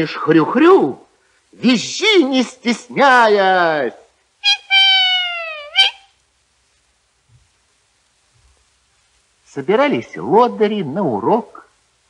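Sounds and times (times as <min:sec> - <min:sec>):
man imitating piglet squeal: 0:04.4 - 0:06.2.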